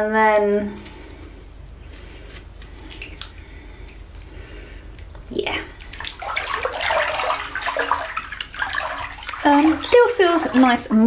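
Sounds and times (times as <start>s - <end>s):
low steady hum: 0.0s - 11.0s
wet squishing: 0.2s - 11.0s
water drips: 2.6s - 11.0s.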